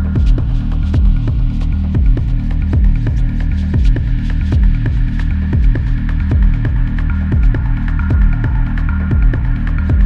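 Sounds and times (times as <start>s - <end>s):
deep throbbing bass drone: 0.0s - 10.0s
techno kick drum: 0.0s - 10.0s.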